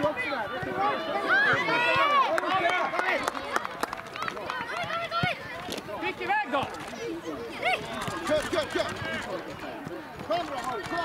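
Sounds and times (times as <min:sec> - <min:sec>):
voices shouting and calling: 0:00.0 - 0:11.0.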